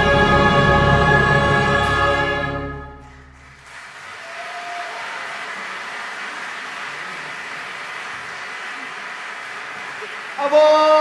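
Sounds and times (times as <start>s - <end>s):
low orchestral note: 0.0s - 3.8s
audience applause: 3.0s - 11.0s.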